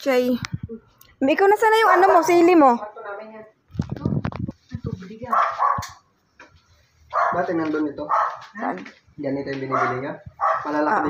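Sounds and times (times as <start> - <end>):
dog barking: 1.8 - 2.3, 5.3 - 6.0, 7.1 - 8.6, 9.7 - 10.8.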